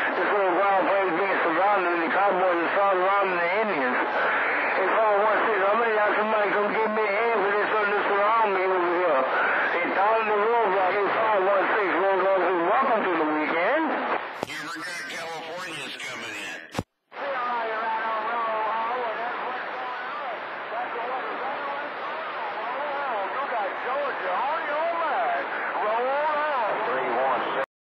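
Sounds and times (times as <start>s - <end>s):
radio noise: 0.0s - 16.9s, 18.1s - 26.0s
garbled radio voices: 14.2s - 16.9s.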